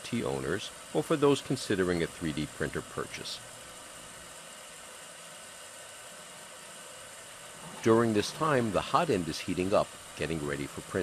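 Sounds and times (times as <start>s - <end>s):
printer hum and hiss: 0.0s - 11.0s.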